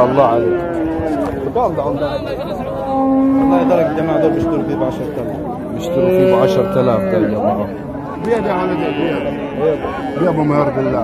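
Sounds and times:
calf mooing: 0.0 - 1.4, 2.5 - 11.0
men's voices: 0.0 - 11.0.

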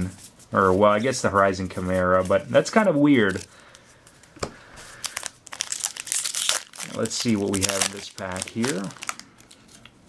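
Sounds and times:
foil wrapper crinkling: 4.9 - 9.9.

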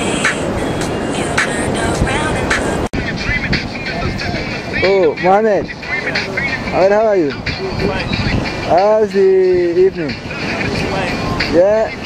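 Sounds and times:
strong wind buffeting microphone: 0.0 - 12.0.

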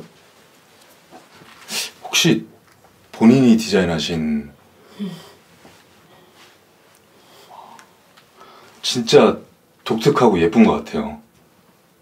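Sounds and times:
person drawing breath: 7.1 - 8.8.

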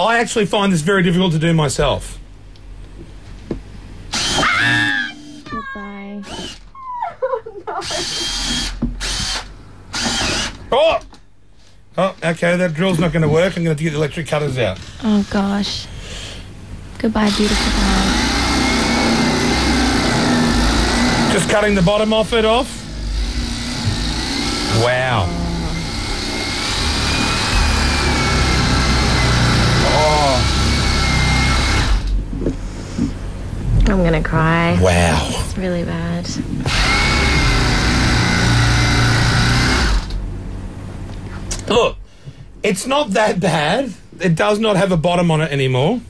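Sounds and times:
electric cutter running: 4.1 - 6.7, 7.8 - 10.7, 17.1 - 32.2, 36.6 - 40.3.

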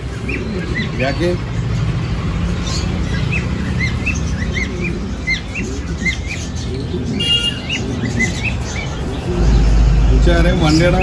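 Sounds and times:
caged birds chirping: 0.0 - 11.0
harsh bird call: 0.0 - 11.0.

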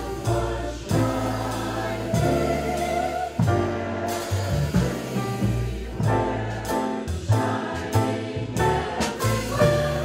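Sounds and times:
mixed chorus singing: 0.0 - 10.0
upright bass notes: 0.0 - 10.0.

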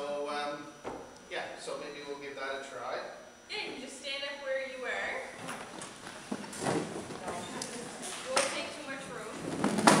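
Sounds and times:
people talking in a hall: 3.4 - 10.0.

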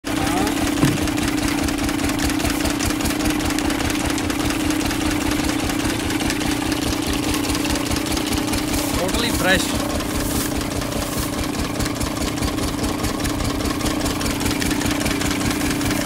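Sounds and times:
engine running steadily: 0.0 - 16.0.

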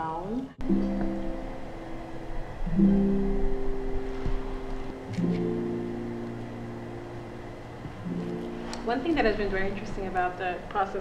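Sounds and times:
acoustic guitar chord ringing: 0.6 - 10.4.

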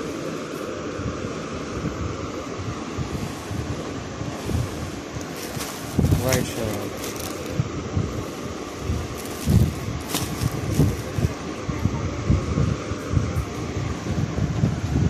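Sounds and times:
microphone handling bumps: 5.2 - 7.6, 9.1 - 11.3
plastic wrapping crinkling: 5.2 - 7.6, 9.1 - 11.3.

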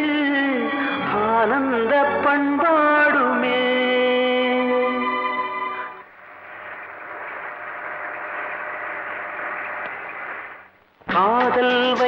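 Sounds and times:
steady static hiss: 5.3 - 11.5.

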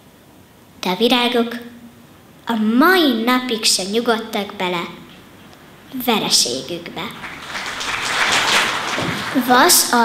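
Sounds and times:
audience applauding: 7.2 - 10.0.

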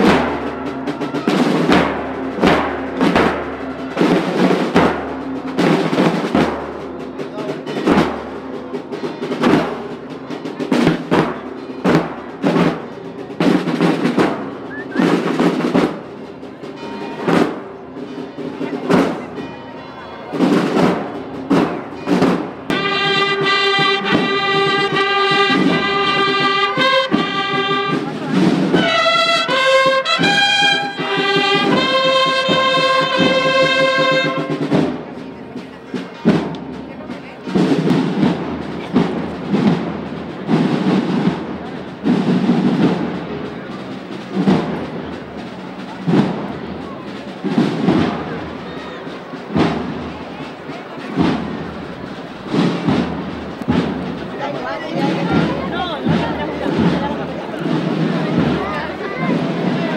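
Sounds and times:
marching band drum strokes: 0.0 - 59.9
trumpets playing held melody: 22.0 - 34.8.

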